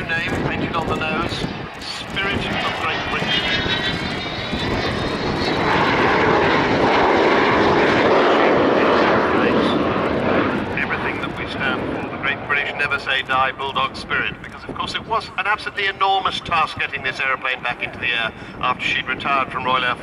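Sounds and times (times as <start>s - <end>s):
jet engines whining: 0.0s - 20.0s.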